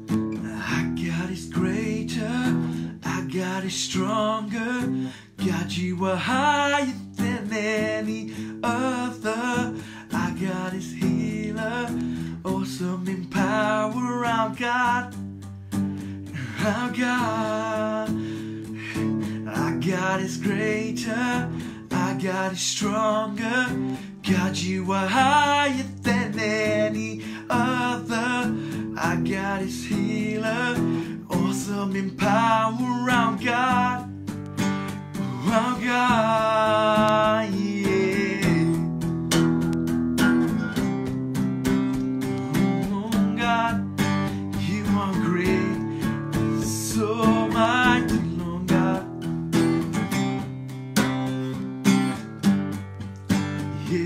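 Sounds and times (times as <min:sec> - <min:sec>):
acoustic guitar strumming chords: 0:00.0 - 0:54.0
person singing: 0:00.4 - 0:15.2, 0:16.3 - 0:34.1, 0:35.2 - 0:39.0, 0:41.9 - 0:49.2, 0:53.3 - 0:54.0.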